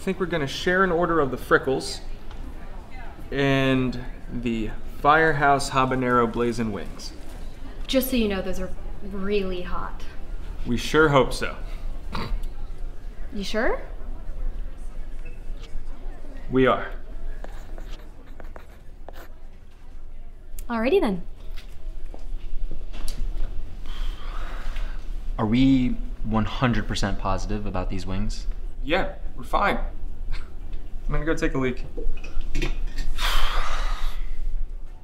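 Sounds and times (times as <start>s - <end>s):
pen scratching on paper: 17.6s - 19.4s.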